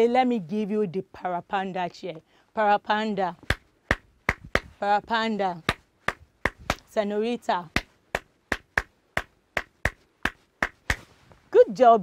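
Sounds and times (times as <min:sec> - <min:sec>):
person clapping hands rhythmically: 0:03.5 - 0:04.7, 0:05.6 - 0:06.9, 0:07.7 - 0:11.1.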